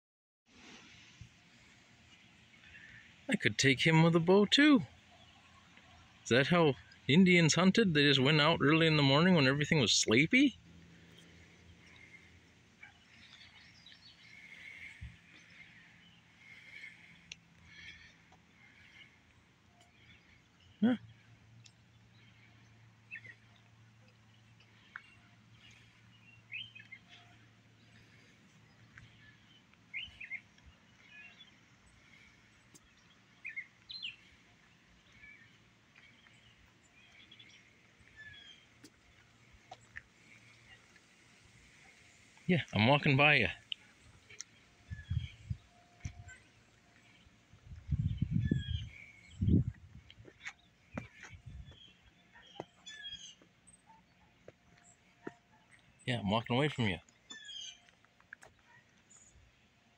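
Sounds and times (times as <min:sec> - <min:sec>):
faint birds chirping: 0:00.6 - 0:59.9
faint bird chirps: 0:41.6 - 0:49.8, 0:50.4 - 0:58.0.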